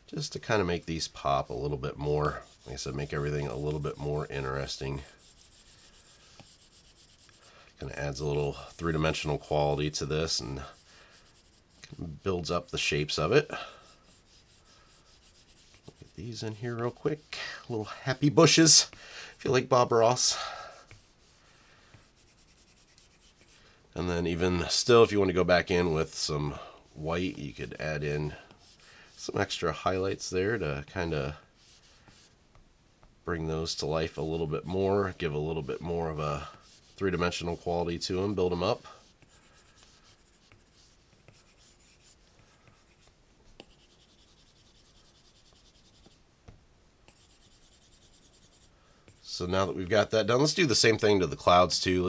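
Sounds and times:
stylus scratching on glass screen: 0.3s - 17.4s, 19.5s - 23.6s, 27.0s - 32.4s, 33.7s - 46.2s, 47.1s - 52.0s.

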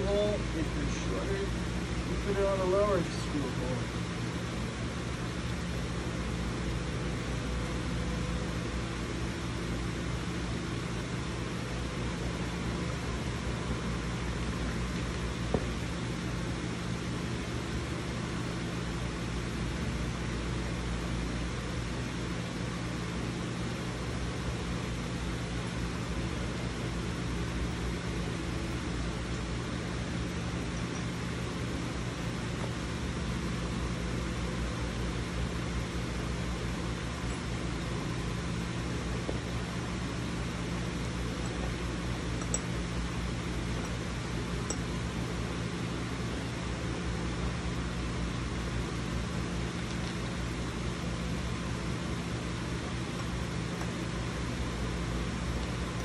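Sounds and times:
machinery humming and hissing: 0.0s - 56.0s.

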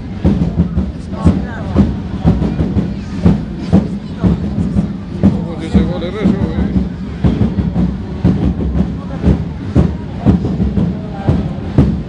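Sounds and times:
marching drums beating: 0.0s - 12.0s.

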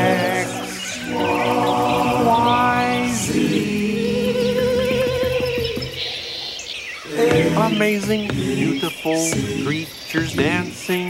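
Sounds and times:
person singing with vibrato: 0.0s - 6.2s, 7.1s - 11.0s
bird calls and chirps: 0.0s - 11.0s
drum strokes: 7.1s - 10.6s.

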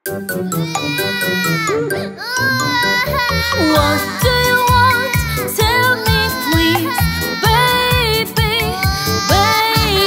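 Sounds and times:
children's song music: 0.0s - 10.0s
baby-like crying wails: 0.5s - 10.0s.

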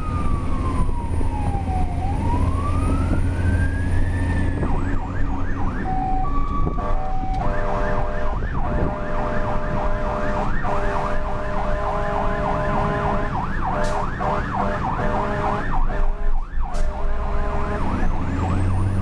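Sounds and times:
diesel engine rumbling: 0.0s - 19.0s
fire truck siren yelping: 0.0s - 19.0s
steady horn blasts: 6.6s - 18.5s.

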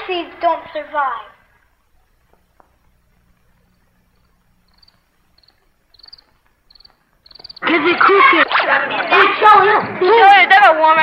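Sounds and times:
crickets chirping: 1.7s - 8.0s.

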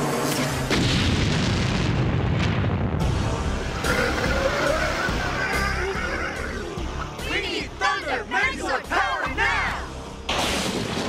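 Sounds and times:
explosion rumble: 0.7s - 3.4s.

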